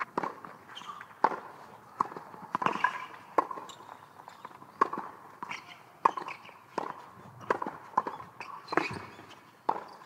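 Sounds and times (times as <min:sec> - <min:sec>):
tennis racket hitting ball: 0:00.0 - 0:03.7, 0:04.8 - 0:10.0
tennis ball bouncing: 0:00.0 - 0:10.0.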